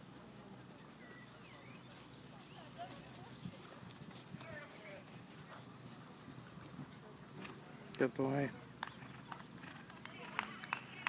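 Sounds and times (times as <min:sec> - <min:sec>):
horse hoofbeats on turf: 0:00.0 - 0:11.0.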